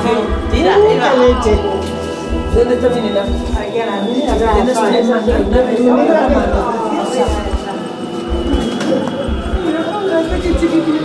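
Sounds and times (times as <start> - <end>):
deep low double thump: 0.0 - 3.6, 7.3 - 7.7, 8.3 - 8.7, 9.3 - 9.7
people chattering: 0.0 - 11.0.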